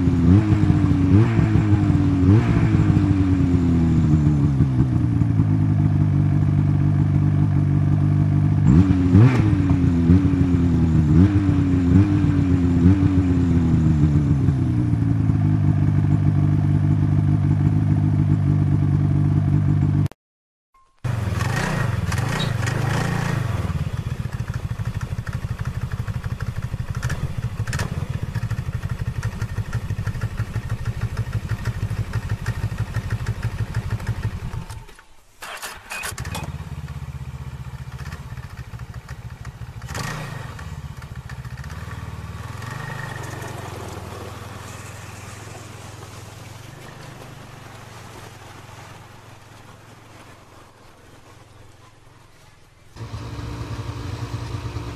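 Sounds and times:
engine with fast even pulse: 0.0s - 20.0s, 21.0s - 51.7s, 52.4s - 54.9s
snowmobile engine running: 52.9s - 54.9s.

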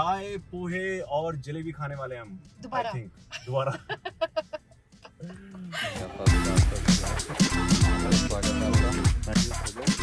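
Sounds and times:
man laughing: 3.4s - 6.9s.

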